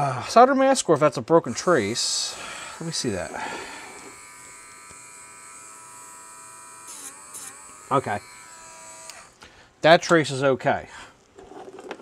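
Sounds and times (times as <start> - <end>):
rotary tool high whine: 1.5 - 9.4.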